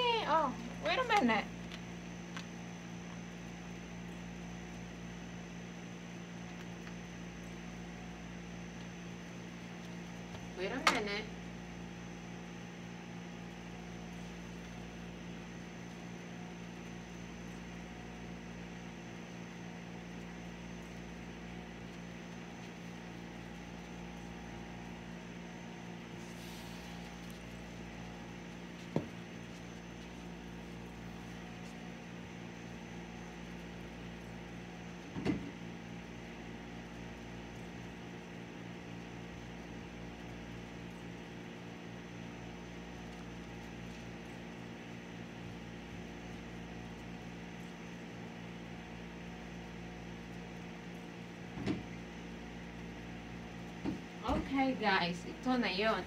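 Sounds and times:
appliance humming: 0.0s - 56.0s.

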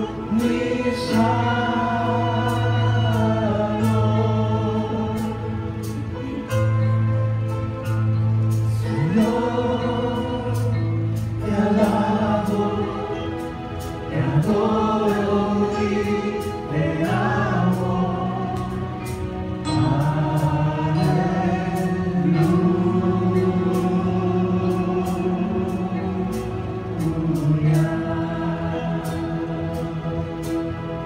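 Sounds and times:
band with low notes: 0.0s - 31.0s.

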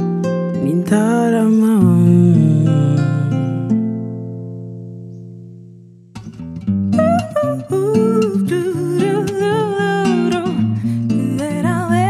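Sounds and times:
plucked acoustic guitar: 0.0s - 12.0s
woman humming melody: 7.0s - 12.0s.

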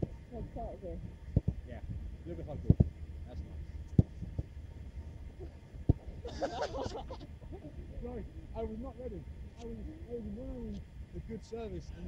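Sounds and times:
football thuds: 5.4s - 6.2s.

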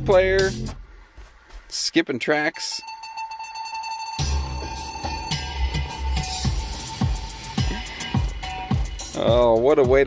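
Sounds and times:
electronic music with heavy bass: 0.0s - 0.8s, 2.5s - 10.0s.

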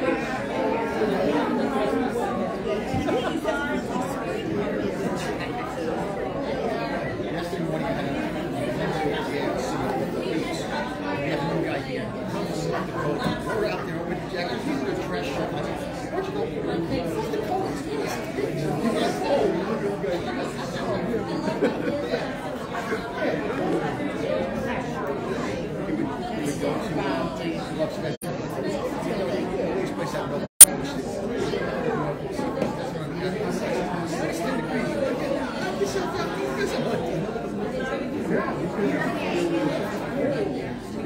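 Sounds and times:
indistinct chatter of people: 0.0s - 41.0s
murmur of voices: 0.0s - 41.0s.

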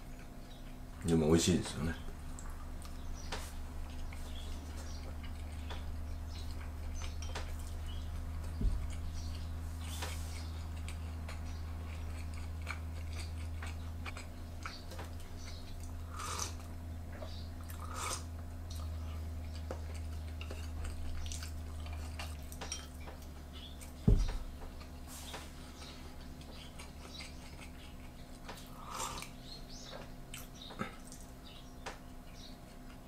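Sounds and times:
man chewing food: 0.0s - 1.0s, 2.0s - 33.0s
steady low hum: 0.0s - 33.0s.

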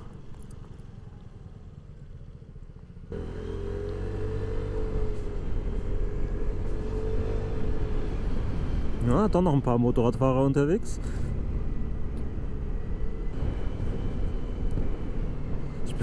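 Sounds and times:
scooter engine running: 0.0s - 8.6s.

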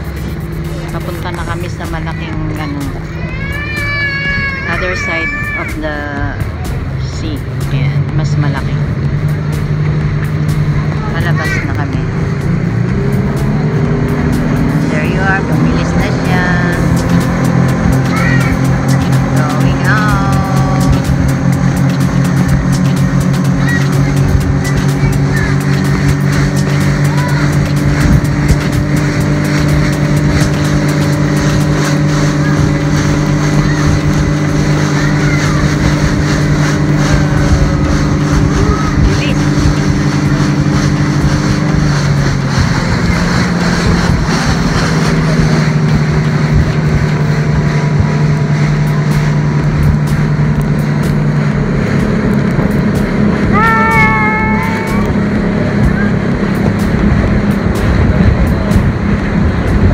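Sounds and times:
motorboat engine droning: 0.0s - 59.9s
rushing water: 0.0s - 59.9s
wind on microphone: 0.0s - 59.9s.

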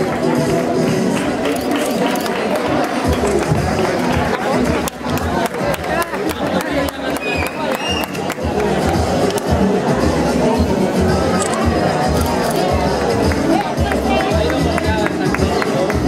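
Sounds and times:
crowd chatter: 0.0s - 16.0s
music playing: 0.0s - 16.0s.

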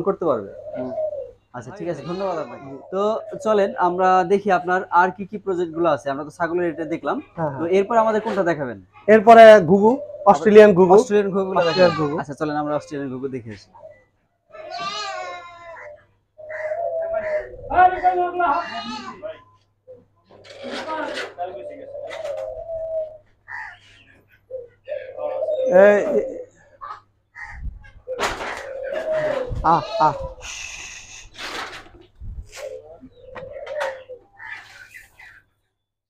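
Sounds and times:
doves cooing: 0.0s - 35.6s
goat bleating: 1.7s - 2.8s, 11.4s - 12.2s, 14.5s - 15.9s, 18.5s - 19.4s, 29.6s - 30.5s
fainter higher bird calls: 13.8s - 31.8s, 32.5s - 35.6s.

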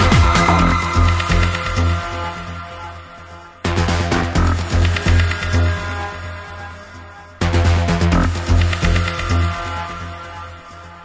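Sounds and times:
four-on-the-floor kick drum: 0.0s - 2.2s
electronic dance music: 0.0s - 6.2s.

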